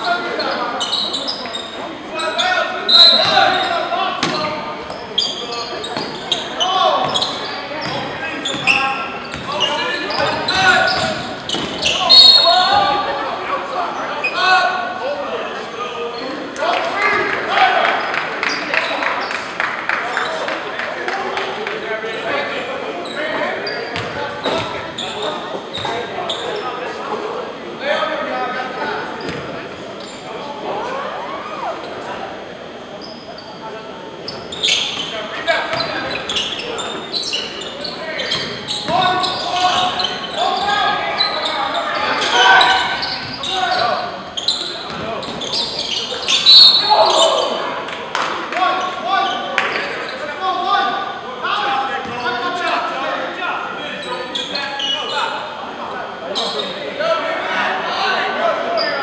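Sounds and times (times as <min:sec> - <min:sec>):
players calling out: 0:00.0 - 0:21.2, 0:21.8 - 0:59.0.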